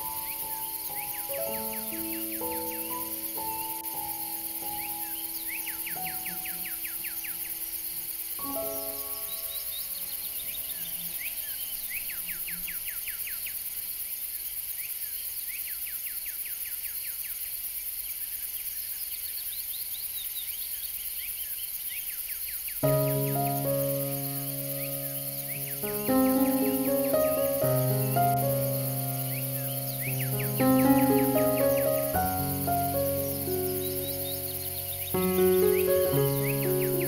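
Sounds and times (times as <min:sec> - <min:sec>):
soft background music: 0:00.0 - 0:07.6, 0:08.3 - 0:12.1, 0:22.8 - 0:37.0
bird chirping trills: 0:00.0 - 0:13.6, 0:19.6 - 0:37.0
high insect drone: 0:00.0 - 0:37.0.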